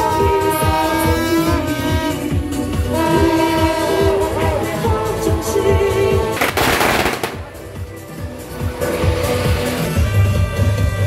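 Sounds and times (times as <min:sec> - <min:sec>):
loud procession music: 0:00.0 - 0:11.0
firecrackers crackling: 0:06.4 - 0:07.7.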